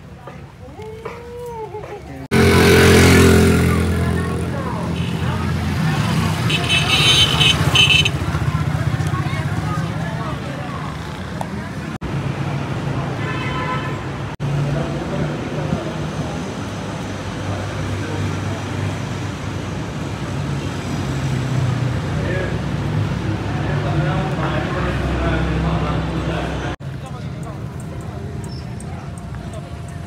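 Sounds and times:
motorcycles and cars passing: 0:00.1 - 0:30.0
vehicle horn: 0:04.8 - 0:05.5, 0:06.4 - 0:08.2, 0:13.2 - 0:14.2.

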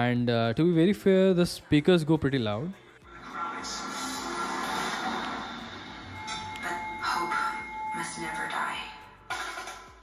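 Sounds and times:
tinny music from speakers: 0:00.0 - 0:10.0.

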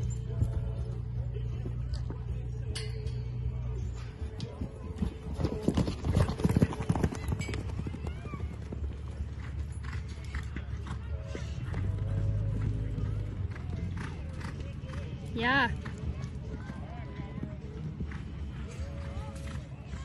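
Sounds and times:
horse hoofbeats on dirt: 0:00.0 - 0:20.0.

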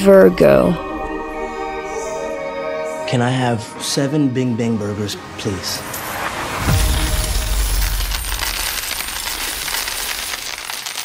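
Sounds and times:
coins jingling and clattering: 0:06.7 - 0:11.0.

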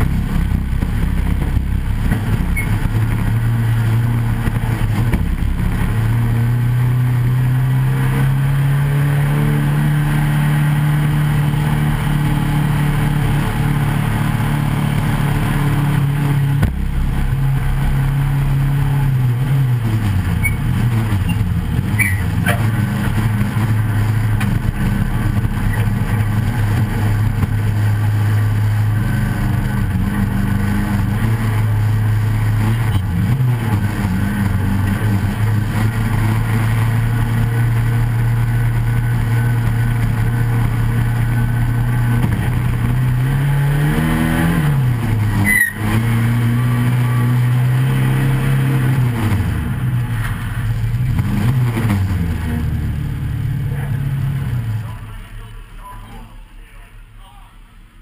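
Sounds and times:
racing car engine running hard: 0:00.0 - 0:58.0.

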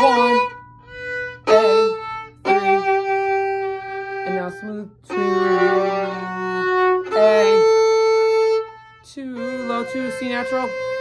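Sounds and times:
violin sustained bowed notes: 0:00.0 - 0:11.0.

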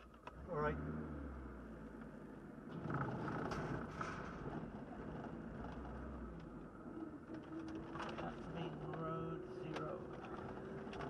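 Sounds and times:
car engine pulling away: 0:00.0 - 0:11.0
tyre and road noise: 0:00.0 - 0:11.0.

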